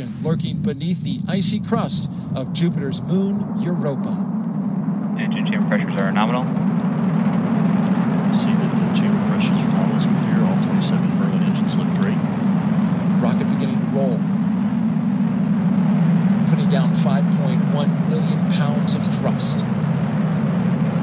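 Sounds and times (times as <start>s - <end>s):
rocket engines rumbling: 0.0s - 21.0s.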